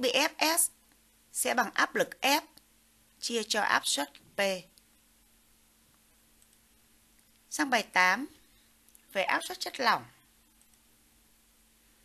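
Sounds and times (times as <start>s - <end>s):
faint low hum: 0.0s - 12.0s
faint click: 5.9s - 6.6s, 10.5s - 10.8s.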